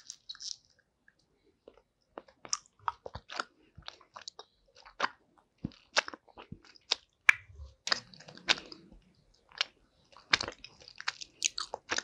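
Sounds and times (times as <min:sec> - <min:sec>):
chewing gummy candy: 0:00.0 - 0:00.8, 0:01.6 - 0:12.0.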